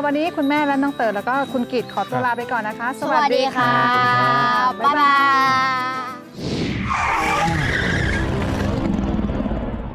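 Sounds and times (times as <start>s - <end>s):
rough rumbling noise: 8.1s - 9.9s.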